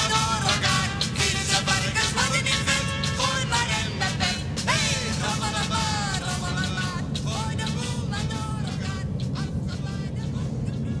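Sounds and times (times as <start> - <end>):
train rumbling: 0.0 - 11.0.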